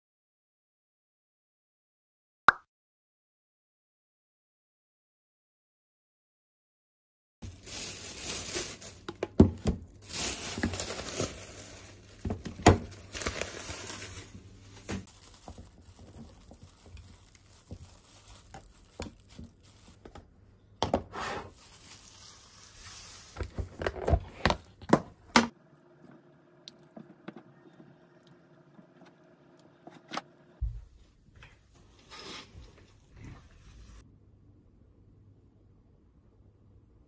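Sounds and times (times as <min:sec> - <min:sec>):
plastic wrap rustling: 0:07.4 - 0:20.3, 0:21.4 - 0:24.7.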